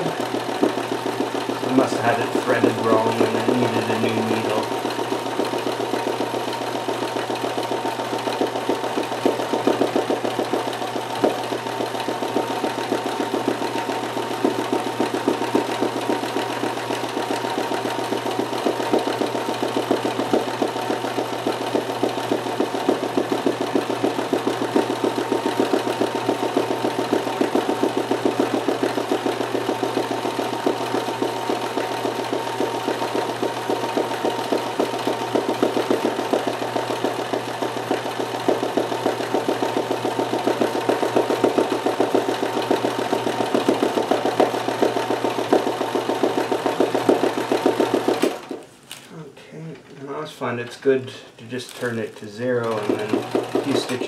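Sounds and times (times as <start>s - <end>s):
sewing machine running: 0.0s - 48.7s, 51.7s - 54.0s.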